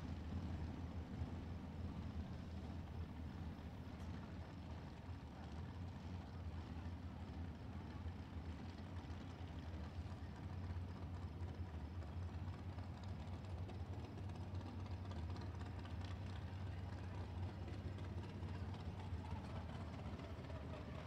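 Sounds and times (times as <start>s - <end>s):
distant motors rumbling: 0.0s - 21.0s
faint outdoor background noise: 0.0s - 21.0s.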